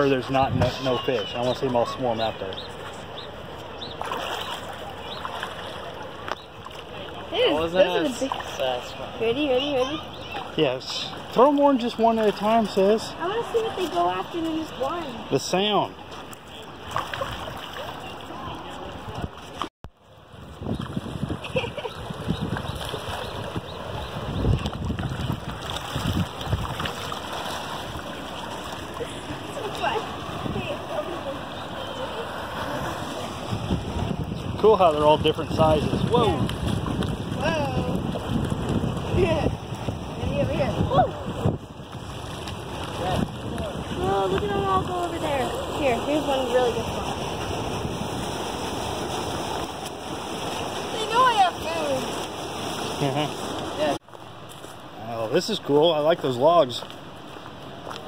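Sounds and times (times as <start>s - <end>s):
rushing water: 0.0s - 58.0s
fish splashing at surface: 4.0s - 6.9s, 24.6s - 30.4s.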